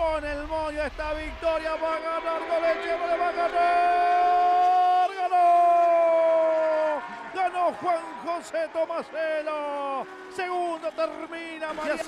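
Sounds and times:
race commentator shouting: 0.0s - 12.0s.

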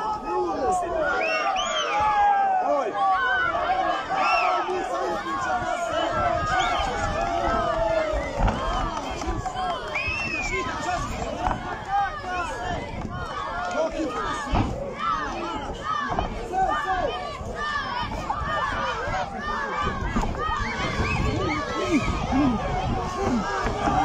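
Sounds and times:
crowd shouting and cheering: 0.0s - 24.0s.

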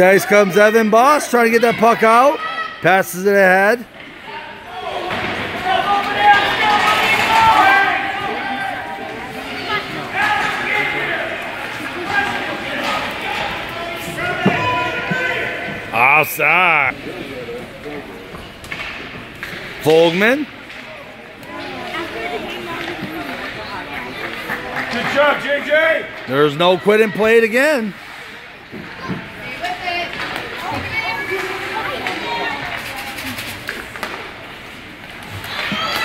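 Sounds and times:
indistinct crowd talking: 0.0s - 36.0s
murmur of voices: 0.0s - 36.0s
man's loud voice: 15.9s - 17.0s
hockey sticks and puck knocking: 22.6s - 25.2s, 33.6s - 34.3s.

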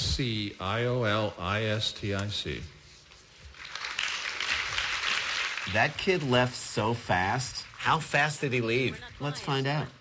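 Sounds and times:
audience applause: 3.6s - 7.0s.

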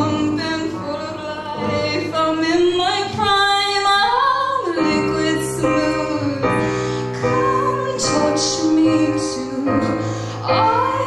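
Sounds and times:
digital piano: 0.0s - 11.0s
woman singing: 0.0s - 11.0s.

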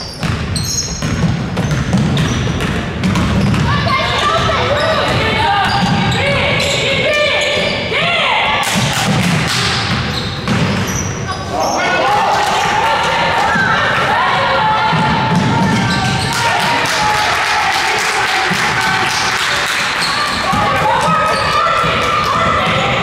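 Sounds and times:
sneaker squeaks: 0.0s - 8.3s, 9.5s - 12.0s, 14.9s - 16.5s, 19.8s - 22.9s
voices in a gym: 0.0s - 23.0s
basketball dribbling on hardwood: 0.2s - 3.8s.

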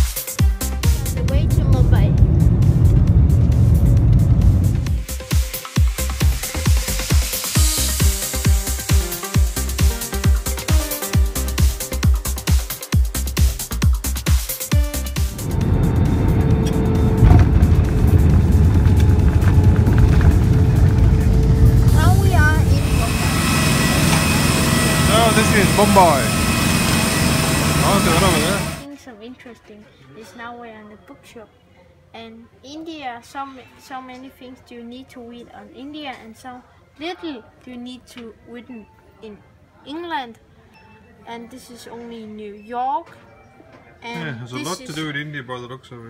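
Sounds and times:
gliding tones: 0.8s - 5.0s, 15.0s - 28.8s
airliner engines rumbling in cabin: 0.8s - 5.1s, 15.0s - 28.8s.

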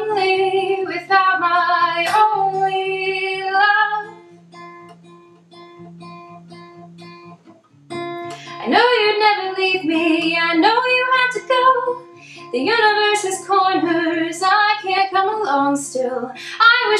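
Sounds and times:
woman singing: 0.0s - 4.2s, 8.3s - 16.9s
acoustic guitar: 0.0s - 16.9s.

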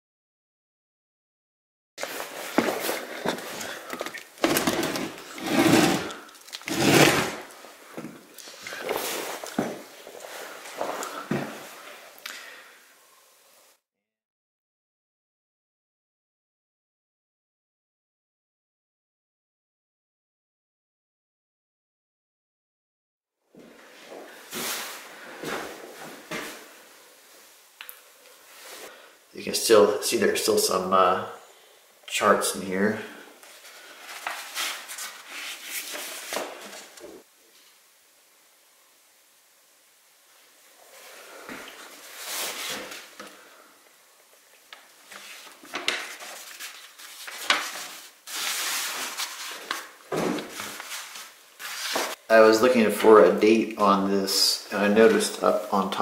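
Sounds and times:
soft scuffs: 2.0s - 3.7s, 46.4s - 52.2s.

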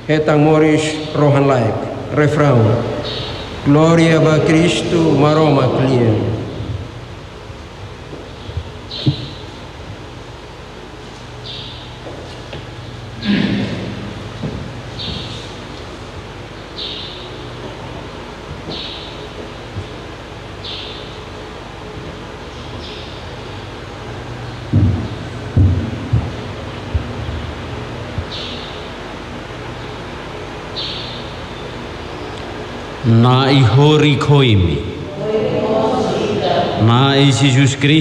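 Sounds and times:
public address system hum: 0.0s - 38.0s
microphone handling thumps: 8.1s - 10.1s, 12.0s - 15.9s, 24.6s - 28.5s.

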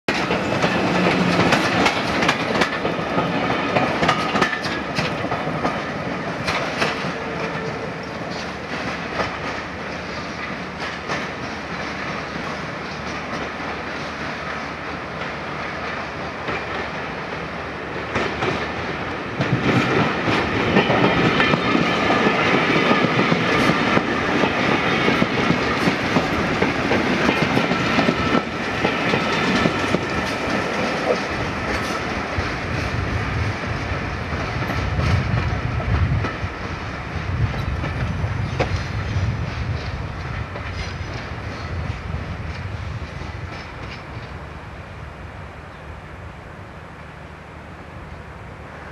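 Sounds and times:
train wheels clacking over rail joints: 0.1s - 44.4s.

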